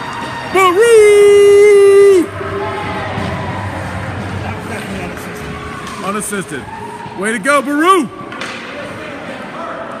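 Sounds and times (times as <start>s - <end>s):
person cheering: 0.5s - 2.4s.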